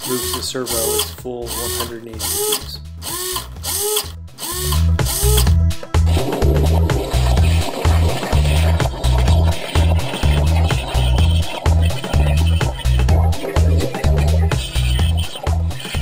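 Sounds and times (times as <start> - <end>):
electronic dance music: 0.0 - 2.7, 4.4 - 16.0
servo motor whirring: 0.0 - 5.6.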